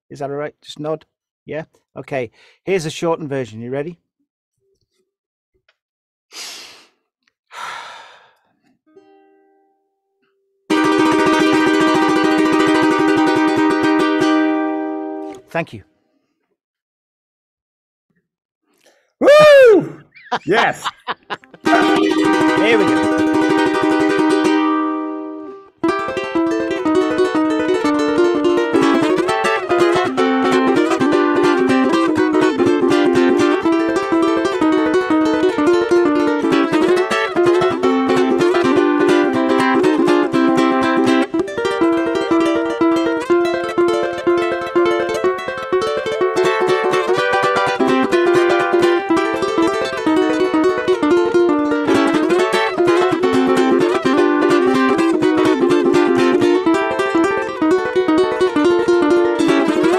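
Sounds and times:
heavy breaths: 7.5 - 8.5
ukulele chord: 8.9 - 9.8, 10.7 - 15.4, 21.5 - 59.9.

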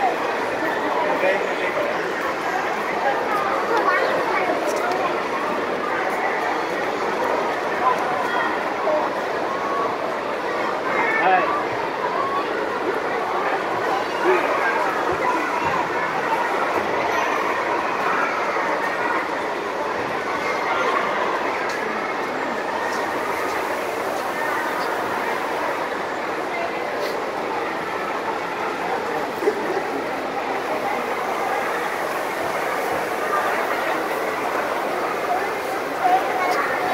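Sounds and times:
background chatter: 0.0 - 36.9.

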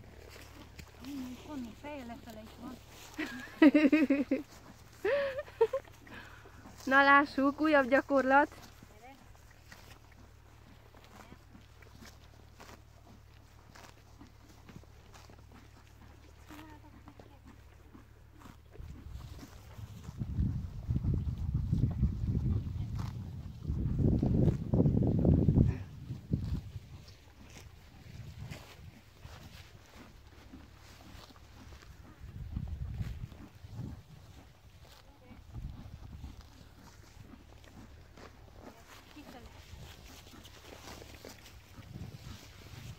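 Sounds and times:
horse tearing and chewing grass: 0.0 - 42.9.

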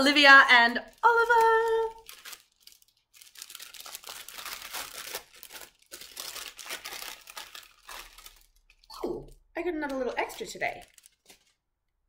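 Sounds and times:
paper packet rustling and tearing: 0.1 - 8.9, 9.6 - 11.7.

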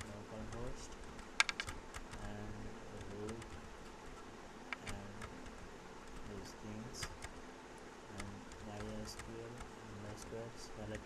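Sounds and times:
keyboard keys clicking: 0.0 - 2.4, 3.0 - 3.7, 4.7 - 7.4, 8.2 - 11.0.

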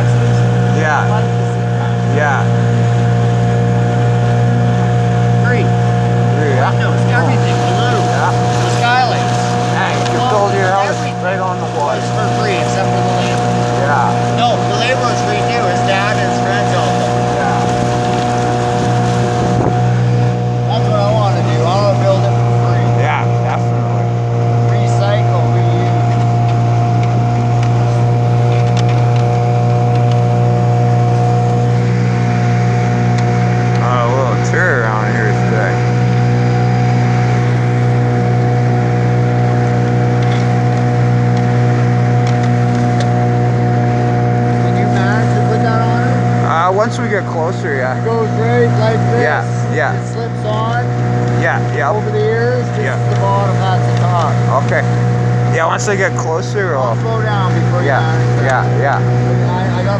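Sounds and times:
motorboat engine droning: 0.0 - 59.9.

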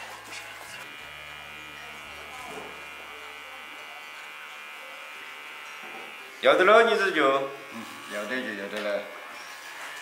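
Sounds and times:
electric hair clippers buzzing: 0.0 - 10.0.

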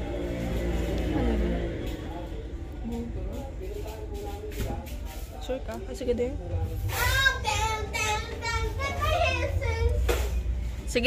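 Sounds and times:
child singing: 6.9 - 10.3.

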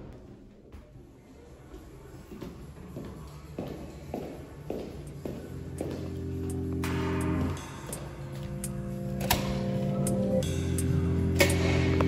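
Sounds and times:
background music: 4.9 - 12.0.

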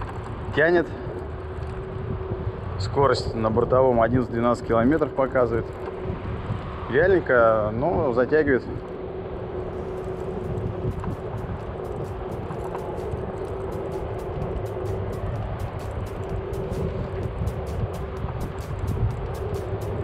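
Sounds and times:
electric scooter motor whine: 0.0 - 20.0
road and wind rumble: 0.0 - 20.0
background music with hi-hat beat: 9.8 - 20.0.

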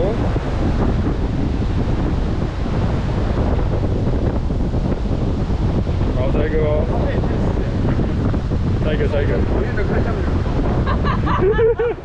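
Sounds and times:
sea surf: 0.0 - 12.0
wind buffeting microphone: 0.0 - 12.0.

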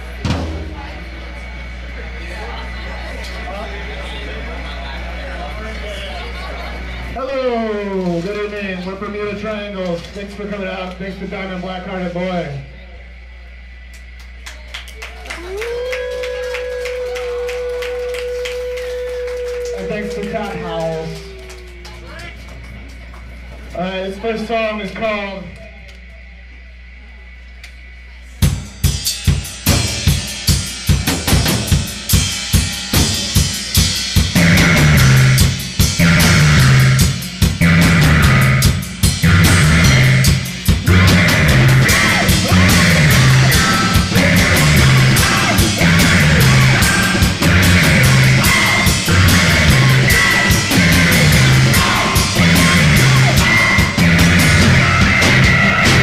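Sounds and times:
drum kit steady beat: 0.0 - 1.2, 28.3 - 56.0
low hum: 8.8 - 28.8, 34.4 - 56.0
live rock band playing: 28.8 - 56.0.

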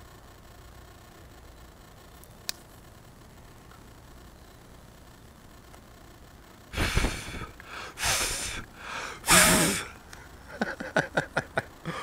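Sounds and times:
person breathing out hard: 6.8 - 10.0
short quick breaths: 6.8 - 10.0.

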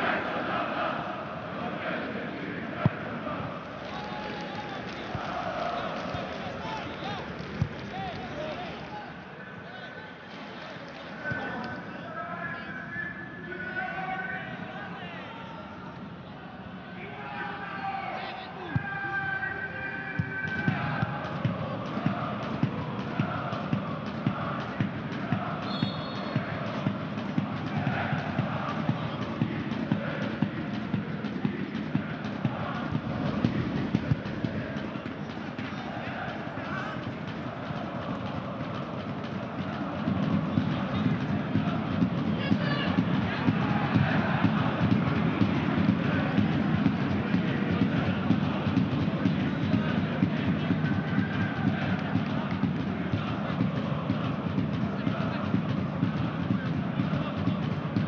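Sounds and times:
stadium crowd chanting: 0.0 - 58.0
steady drumbeat: 20.1 - 58.0.

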